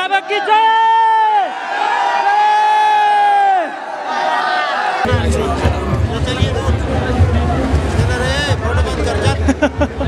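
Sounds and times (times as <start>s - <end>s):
man shouting a chant: 0.0s - 1.5s
crowd voices: 0.0s - 10.0s.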